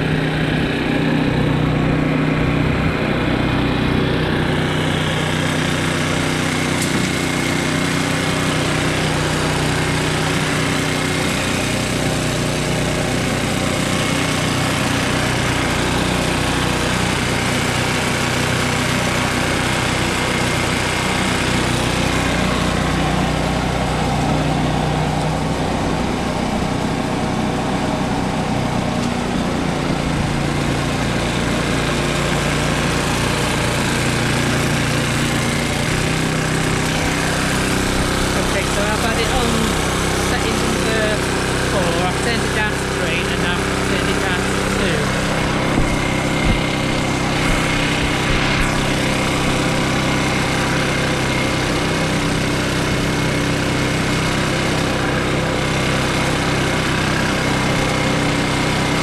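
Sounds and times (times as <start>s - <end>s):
petrol mower engine running: 0.0s - 59.0s.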